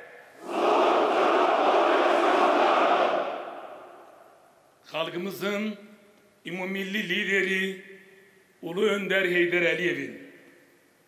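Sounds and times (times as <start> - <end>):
soldiers shouting in unison: 0.4 - 3.8.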